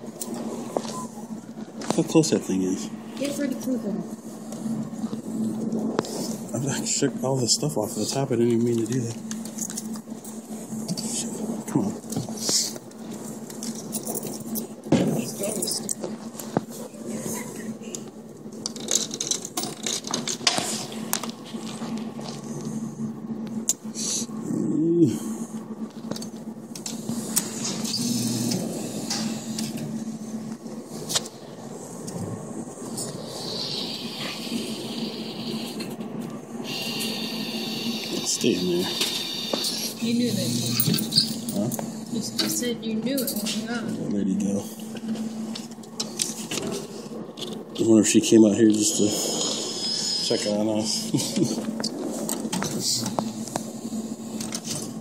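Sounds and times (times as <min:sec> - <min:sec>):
electrical hum: 0:00.0 - 0:55.0.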